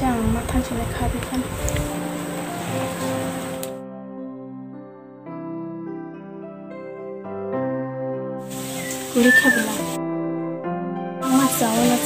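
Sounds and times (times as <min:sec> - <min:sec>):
soft background music: 0:00.0 - 0:12.0
hiss: 0:08.4 - 0:10.0, 0:11.2 - 0:12.0
short voiced cry: 0:08.8 - 0:09.9.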